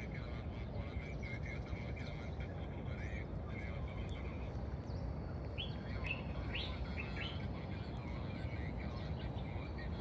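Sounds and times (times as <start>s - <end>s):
low outdoor rumble: 0.0s - 10.0s
birds chirping: 0.2s - 10.0s.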